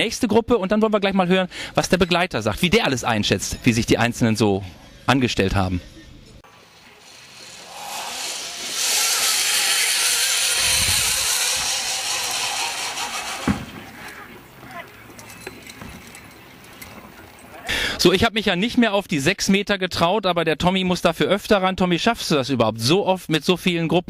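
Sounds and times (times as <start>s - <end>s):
zip-line trolley whirring on cable: 6.5s - 16.3s.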